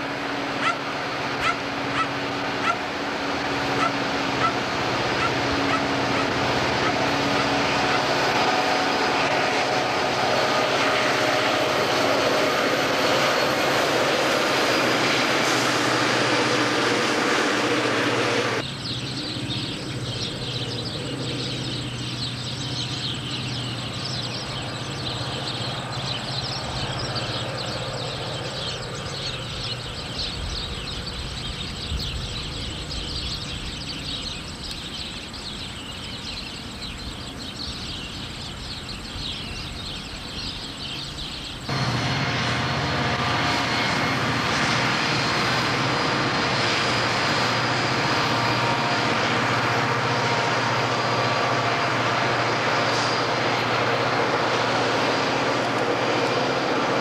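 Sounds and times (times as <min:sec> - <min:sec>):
freight locomotives droning: 0:00.0 - 0:57.0.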